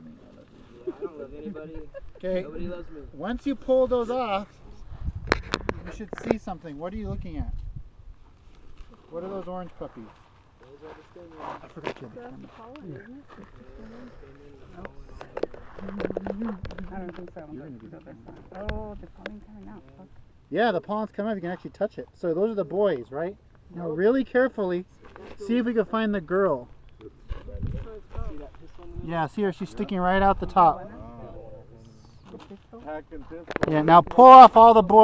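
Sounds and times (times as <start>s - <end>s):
drawn-out low voice: 0.0s - 2.0s, 10.7s - 16.9s
people talking quietly: 0.0s - 7.6s, 8.8s - 35.0s.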